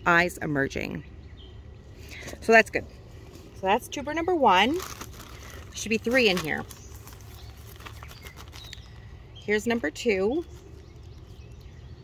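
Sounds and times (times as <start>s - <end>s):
low outdoor rumble: 0.0s - 12.0s
plastic bag crinkling: 4.4s - 9.2s, 10.4s - 11.8s.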